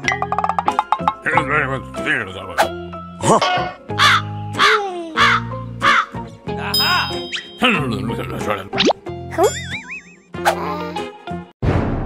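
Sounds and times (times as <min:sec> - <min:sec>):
background music: 0:00.0 - 0:11.6
cartoon voice pitch-bending sounds: 0:08.8 - 0:11.1.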